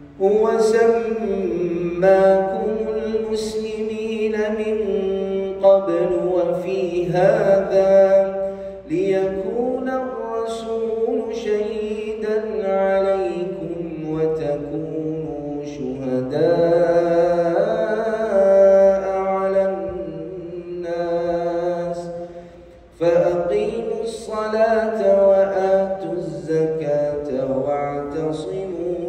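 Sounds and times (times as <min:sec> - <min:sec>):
man chanting melodically: 0:00.0 - 0:29.0.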